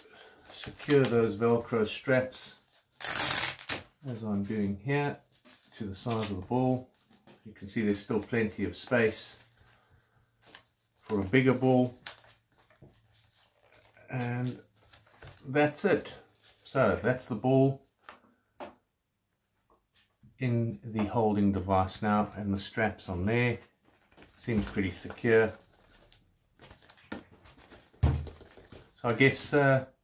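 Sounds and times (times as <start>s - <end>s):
faint rustling of straps: 0.0s - 18.6s, 23.6s - 29.8s
velcro straps being adjusted: 2.7s - 4.2s.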